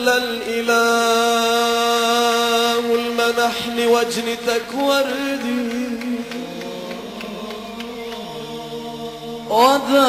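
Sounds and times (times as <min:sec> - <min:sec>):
male choir sustained drone: 0:00.0 - 0:10.0
religious chant: 0:00.0 - 0:10.0.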